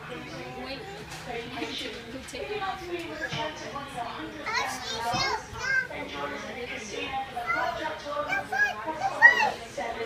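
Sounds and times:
children shouting and calling: 4.5 - 6.0, 7.4 - 9.6.

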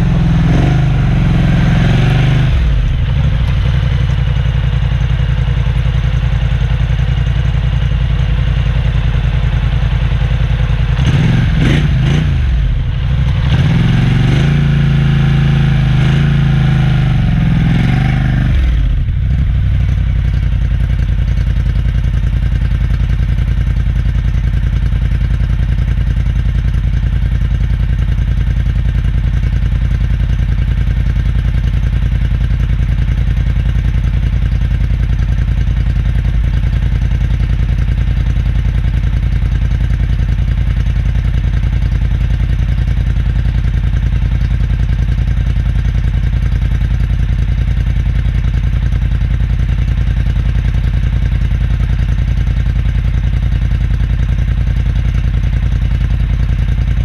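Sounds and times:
atv engine running steadily: 0.0 - 57.0.

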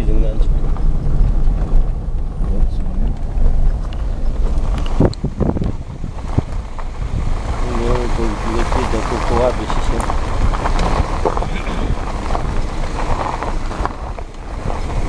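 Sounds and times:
wind buffeting microphone: 0.0 - 15.0
microphone handling knocks: 0.4 - 7.3
person speaking: 7.6 - 10.1.

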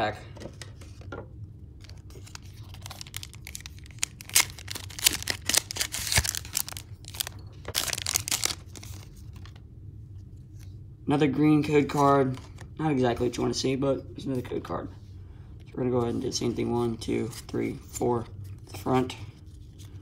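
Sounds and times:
foil wrapper crinkling: 1.8 - 9.6.

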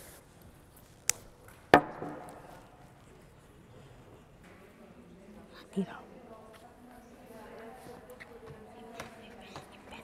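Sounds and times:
knock on wooden table: 1.8 - 2.4.

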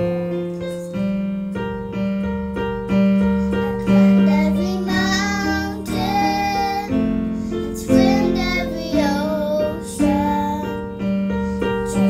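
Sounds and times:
electronic keyboard chords: 0.0 - 12.0
children singing a slow ballad: 3.7 - 7.0, 7.7 - 10.8.

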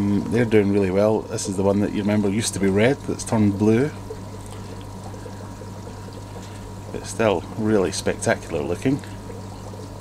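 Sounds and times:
aquarium filter hum: 0.0 - 10.0
water trickling: 0.0 - 10.0.

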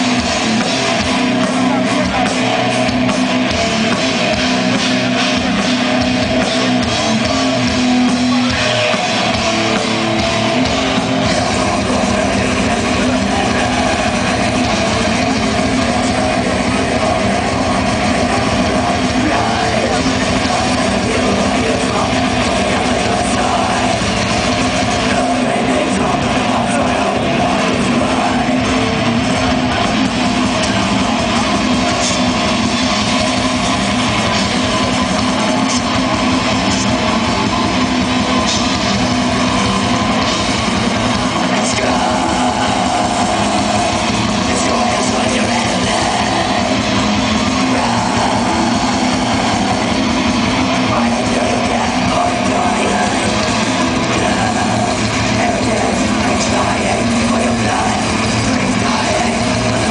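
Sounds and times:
distorted electric guitar: 0.0 - 59.9
fast drumming: 0.0 - 59.9.

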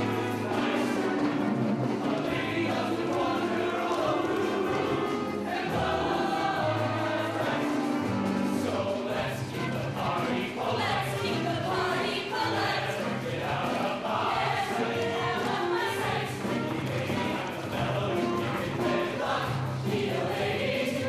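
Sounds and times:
mixed choir singing: 0.0 - 21.0.

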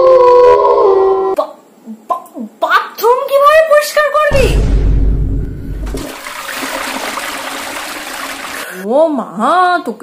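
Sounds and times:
rushing water: 5.9 - 8.7.

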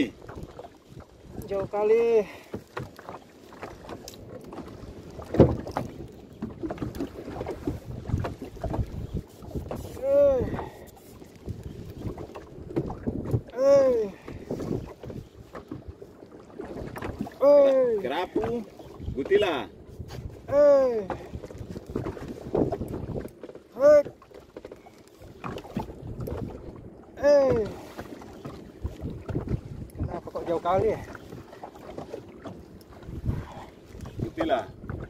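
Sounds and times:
wind buffeting microphone: 0.0 - 2.9, 3.5 - 35.0
person crying out wordlessly: 10.0 - 10.5, 13.5 - 14.2, 20.5 - 21.1, 27.2 - 27.7.

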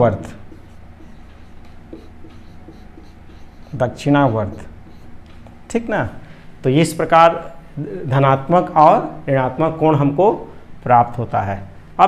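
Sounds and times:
marker pen writing on whiteboard: 0.0 - 5.6.

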